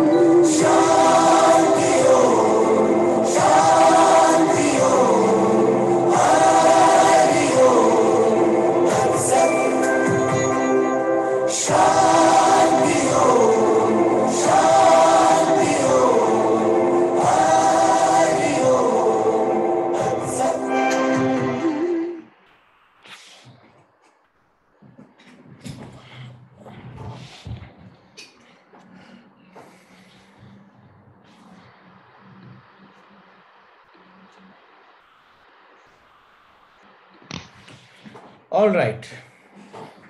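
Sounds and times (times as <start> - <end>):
choir singing long held notes: 0.0 - 22.4
meditative choral music: 0.0 - 22.4.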